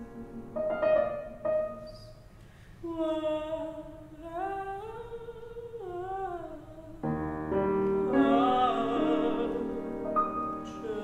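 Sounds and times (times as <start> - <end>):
soprano voice singing: 2.8 - 7.2, 7.9 - 11.0.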